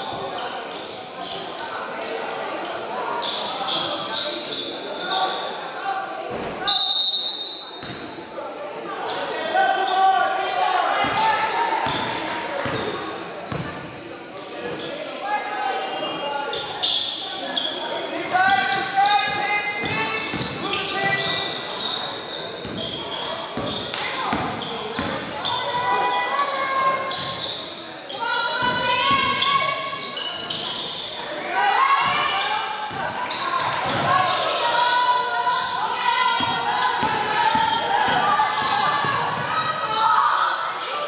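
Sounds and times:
sneaker squeaks: 0:00.0 - 0:05.6, 0:06.3 - 0:08.2, 0:08.9 - 0:41.0
people calling out: 0:15.2 - 0:41.0.

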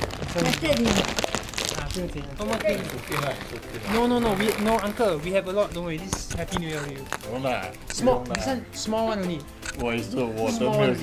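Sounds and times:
plastic bag crinkling: 0:00.0 - 0:07.7
people talking: 0:00.3 - 0:01.1, 0:01.8 - 0:11.0.

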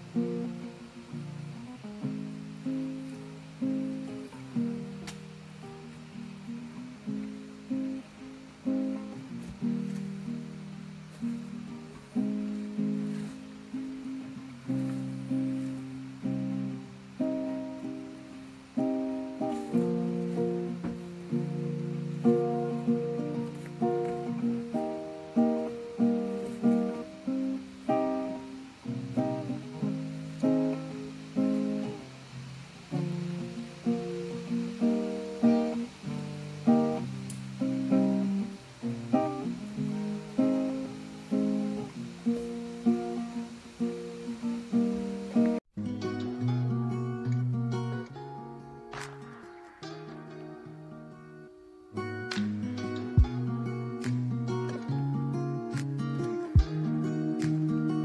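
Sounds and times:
fingerpicked classical guitar: 0:00.0 - 0:58.0.

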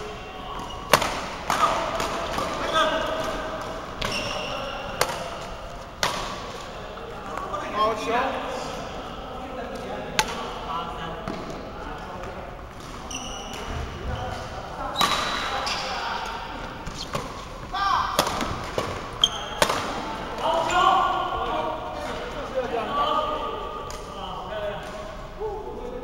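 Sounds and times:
shoes squeaking on court: 0:00.5 - 0:01.0, 0:03.8 - 0:05.4, 0:12.8 - 0:17.7, 0:19.0 - 0:19.7
racket striking shuttlecock: 0:00.9 - 0:02.6.

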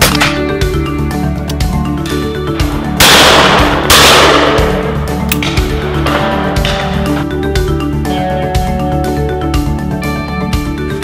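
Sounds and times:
background music: 0:00.0 - 0:11.0
shotgun shots: 0:03.0 - 0:05.6.

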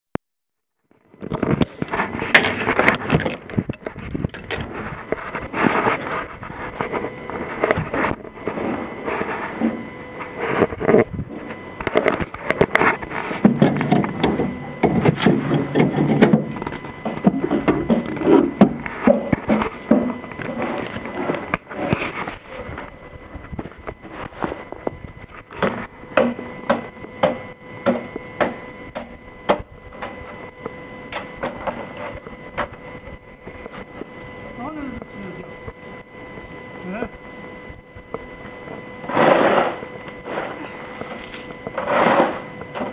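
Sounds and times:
snow shovel scraping on pavement: 0:39.0 - 0:42.9.

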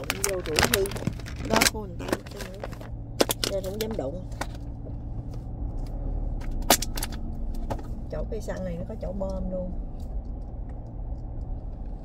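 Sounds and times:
low rumble inside car: 0:00.0 - 0:12.0.

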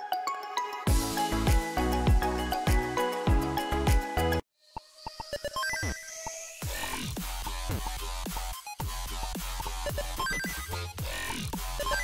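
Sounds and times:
electronic music with steady beat: 0:00.0 - 0:04.4, 0:06.2 - 0:12.0.

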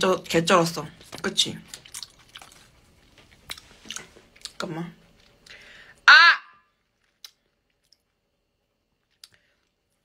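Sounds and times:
woman belting ah: 0:06.0 - 0:06.6.

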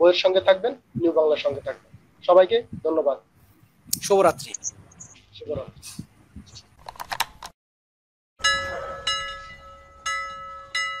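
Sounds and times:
bell-like chime ringing: 0:08.4 - 0:11.0.

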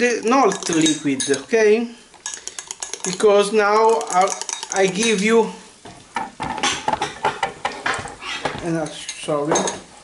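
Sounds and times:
fork clinking against glass: 0:00.4 - 0:01.5, 0:02.2 - 0:05.2.

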